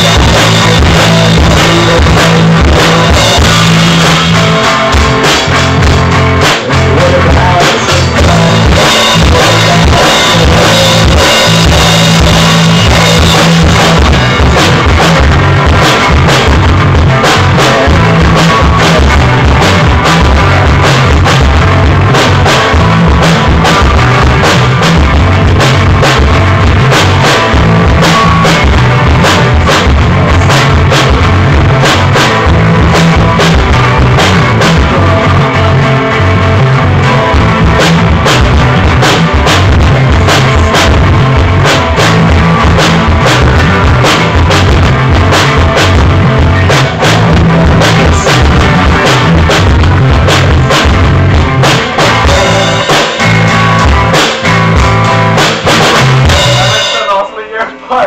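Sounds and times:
drum kit: 0.0s - 58.0s
guitar sounds: 0.0s - 58.0s
live rock band playing: 0.0s - 58.0s.

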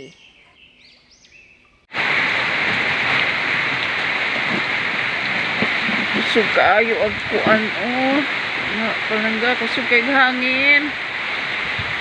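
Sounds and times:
heavy rain falling: 1.9s - 12.0s.

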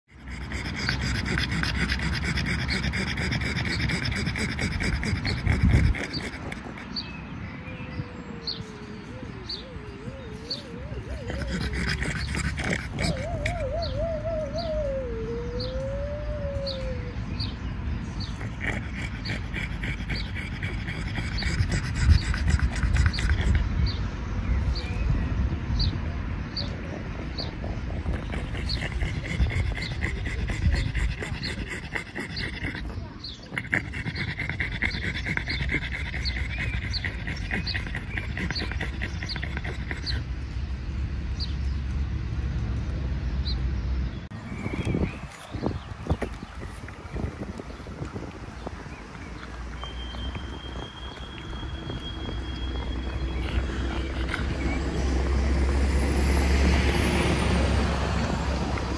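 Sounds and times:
dog whining: 0.1s - 17.6s, 18.2s - 23.7s, 26.5s - 40.3s, 44.7s - 55.8s
bird chirping: 43.4s - 56.0s.

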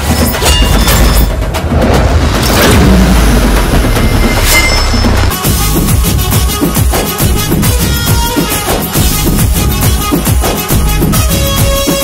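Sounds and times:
heavy bass drone: 1.8s - 6.6s.

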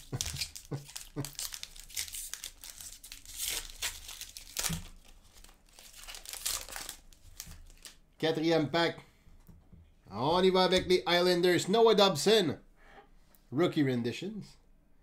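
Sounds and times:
plastic wrapper crinkling and tearing: 0.0s - 8.1s.

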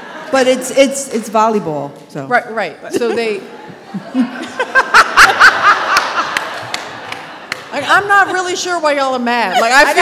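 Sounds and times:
woman laughing: 2.8s - 6.4s, 9.4s - 10.0s.

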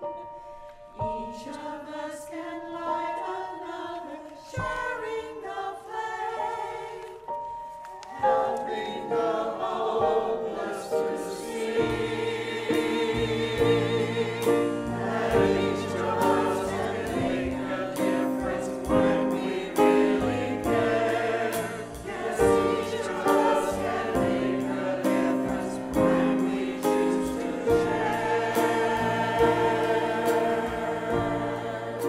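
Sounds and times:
church choir singing: 0.0s - 32.0s.

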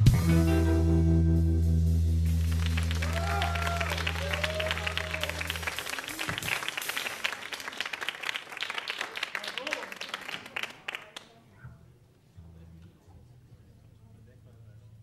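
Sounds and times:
low held bass chord: 0.0s - 5.8s
audience applauding: 2.2s - 11.4s
people shouting: 3.0s - 6.3s.

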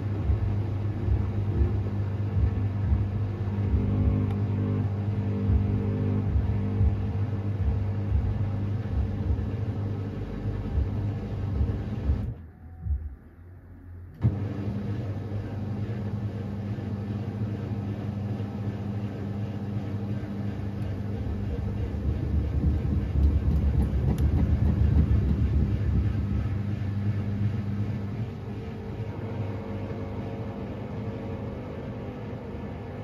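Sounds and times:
washing machine motor humming: 0.0s - 13.4s, 14.1s - 33.0s.

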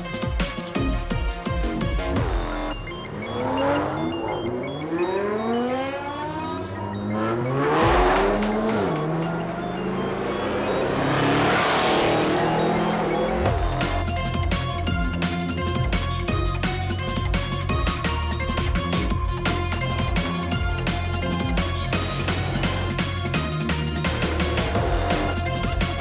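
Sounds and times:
music: 0.0s - 26.0s
car engines revving: 1.6s - 15.8s, 16.8s - 26.0s.

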